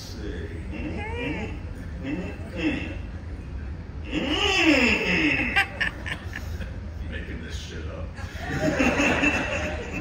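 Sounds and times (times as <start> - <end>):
audience laughter: 5.1 - 6.8, 8.2 - 10.0.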